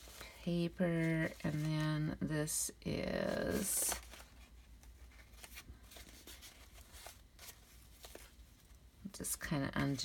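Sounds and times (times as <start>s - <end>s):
paper and twine rustling: 0.0s - 2.2s, 3.0s - 8.8s.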